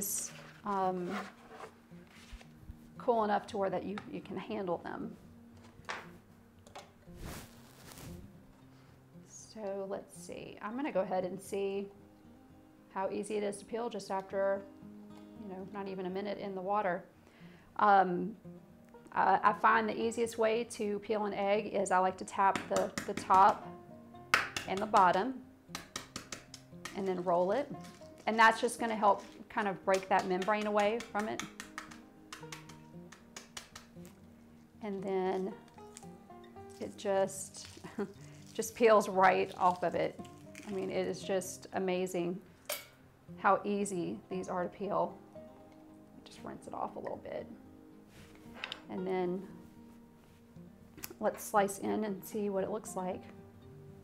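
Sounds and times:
eggshell crackling on cutting board: 22.5 - 23.6, 24.3 - 34.2, 35.4 - 41.1.

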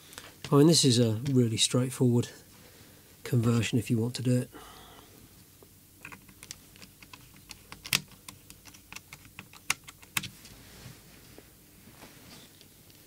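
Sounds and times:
sharp plastic clicks: 6.0 - 10.3.

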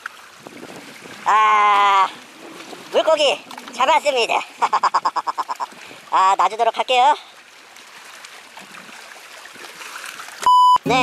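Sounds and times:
seawater washing against rocks: 0.0 - 11.0
loud electronic beep: 10.5 - 11.0.

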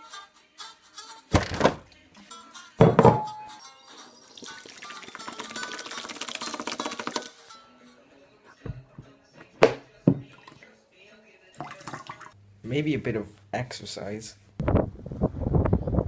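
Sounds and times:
background music: 0.0 - 12.4
loud thumps: 1.3 - 1.9
soda pouring into a bowl: 4.2 - 7.4.

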